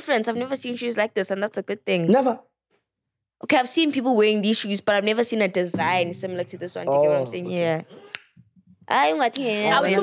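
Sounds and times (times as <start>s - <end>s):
people talking: 8.9s - 10.0s.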